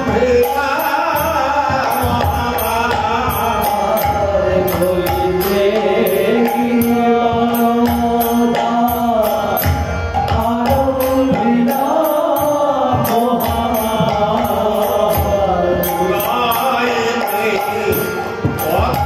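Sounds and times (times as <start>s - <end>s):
devotional singing: 0.0s - 19.0s
harmonium: 0.0s - 19.0s.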